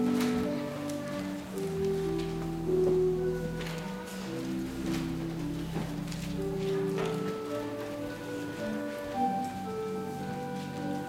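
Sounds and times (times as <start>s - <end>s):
church organ playing chords: 0.0s - 11.0s.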